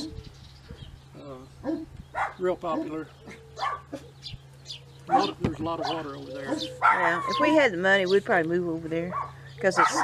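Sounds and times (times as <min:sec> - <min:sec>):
dog barking: 0:01.6 - 0:04.0, 0:05.1 - 0:07.4, 0:09.1 - 0:10.0.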